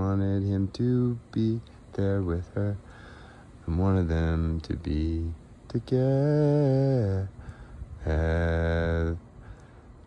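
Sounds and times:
man chanting a steady note: 0.0 - 9.9.

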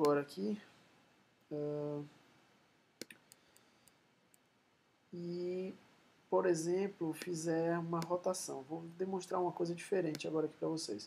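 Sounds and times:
computer mouse clicks: 3.0 - 4.5.

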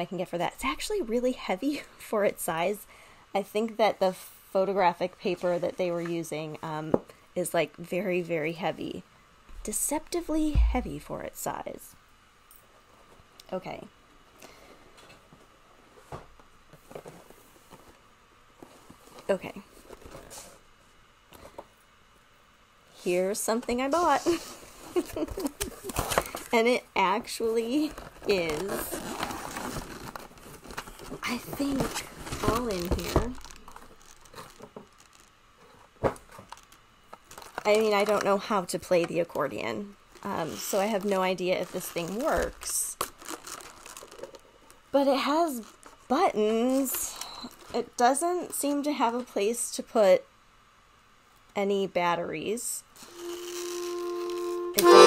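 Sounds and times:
bag crinkling and rustling: 27.6 - 38.4, 39.5 - 44.9.

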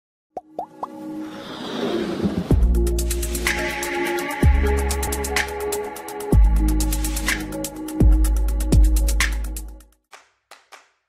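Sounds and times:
musical riser: 0.9 - 6.3.

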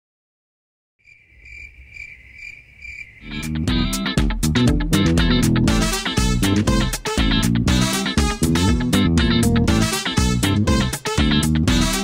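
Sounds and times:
crickets chirping: 1.0 - 3.6.

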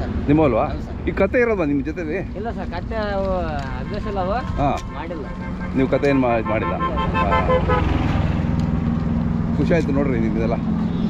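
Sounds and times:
engine running: 0.0 - 11.0
vehicle horn short toots: 3.8 - 8.1.

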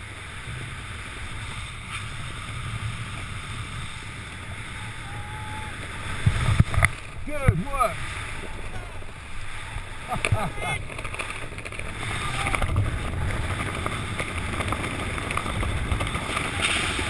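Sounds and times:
wind rushing across microphone: 0.0 - 17.0.

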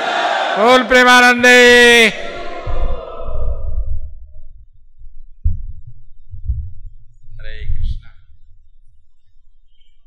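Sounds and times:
dull low thumps: 2.1 - 9.7
faint low rumble: 2.2 - 9.7.

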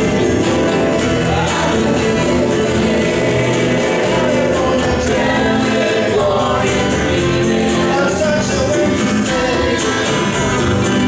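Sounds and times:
strummed guitars: 0.0 - 11.0
voices singing together: 0.0 - 11.0.

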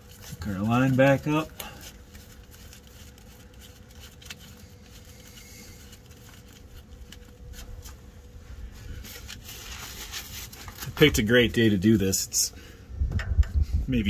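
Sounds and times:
low steady rumble: 0.0 - 14.0.

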